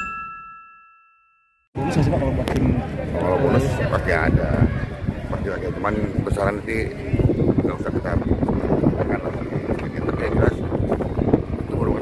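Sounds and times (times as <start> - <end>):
bright chime tones: 0.0 - 1.7.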